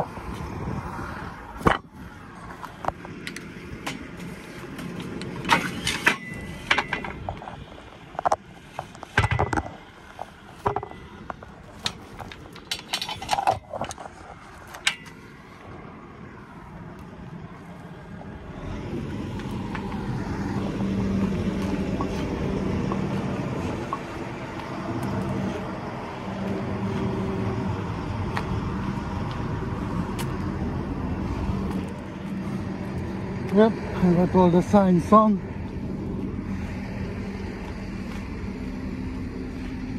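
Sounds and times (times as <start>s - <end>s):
truck diesel engine running: 9.7s - 39.9s.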